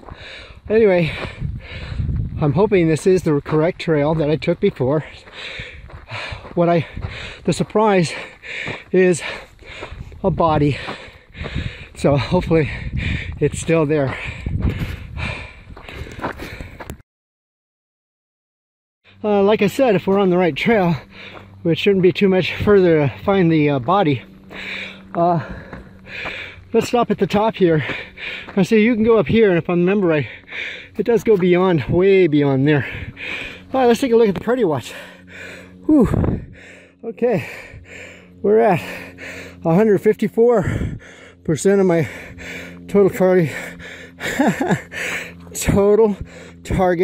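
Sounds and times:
person breathing heavily: 0:00.0 - 0:02.5, 0:04.9 - 0:17.0, 0:19.1 - 0:19.3, 0:20.0 - 0:23.2, 0:24.1 - 0:47.0.

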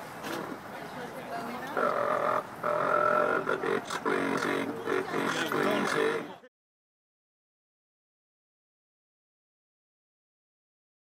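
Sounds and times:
electronically distorted monotone voice: 0:01.7 - 0:06.5.

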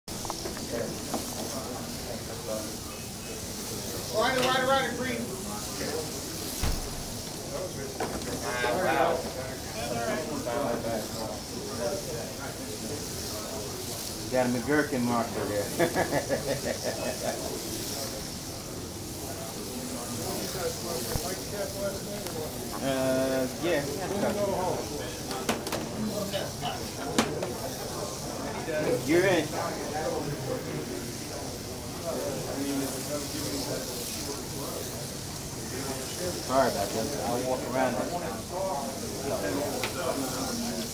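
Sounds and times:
onlookers' voices: 0:00.1 - 0:40.9
people talking: 0:00.1 - 0:40.9
slot car motors hissing: 0:00.1 - 0:40.9.

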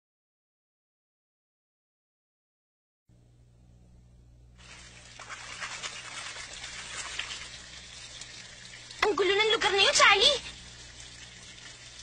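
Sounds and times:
faint low hum: 0:03.1 - 0:12.0
water running and splashing: 0:04.6 - 0:12.0.

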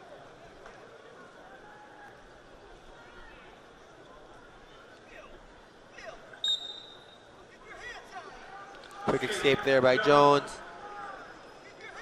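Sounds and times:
faint crowd murmur: 0:00.0 - 0:12.0
referee's whistle: 0:06.4 - 0:07.2.

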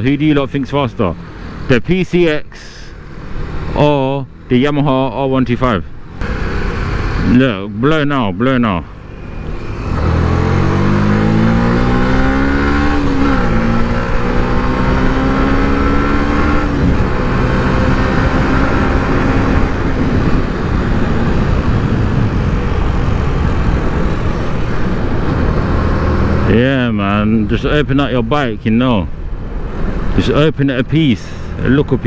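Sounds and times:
motorcycle engine accelerating: 0:06.1 - 0:07.7, 0:08.9 - 0:27.4.

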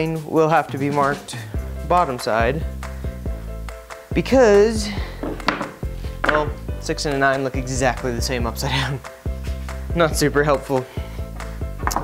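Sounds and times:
wooden boards knocking together: 0:05.2 - 0:06.6, 0:11.8 - 0:12.0.

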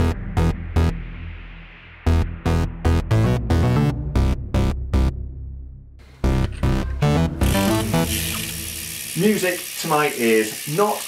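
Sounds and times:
bicycle freewheel ratcheting buzz: 0:07.4 - 0:11.0
man speaking: 0:09.2 - 0:11.0.

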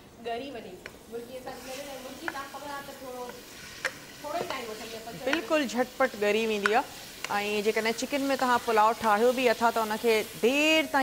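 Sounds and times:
spatula stirring in pan: 0:00.8 - 0:10.8
chicken sizzling in hot oil: 0:00.9 - 0:11.0.

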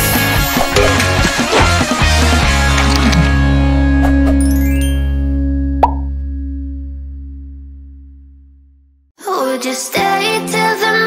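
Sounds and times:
low jingle chord ringing: 0:04.4 - 0:06.9
short pop sound effect: 0:05.8 - 0:06.2.

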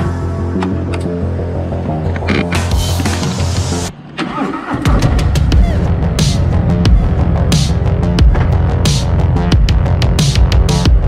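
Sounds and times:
background music: 0:00.0 - 0:11.0
motorcycle engine cranking and starting: 0:04.1 - 0:05.9.

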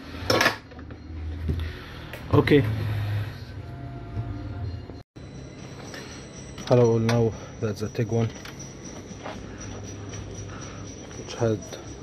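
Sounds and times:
low hum: 0:00.8 - 0:12.0.

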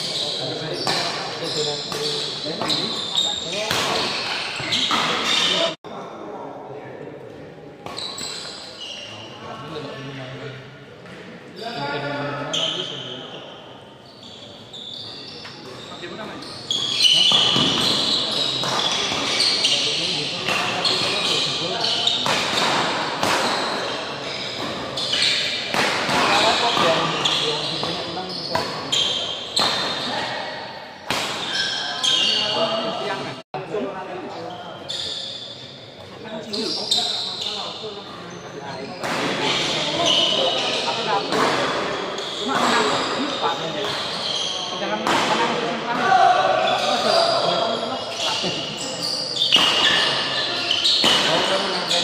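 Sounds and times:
voices and calls: 0:11.6 - 0:33.4, 0:34.4 - 0:52.0.

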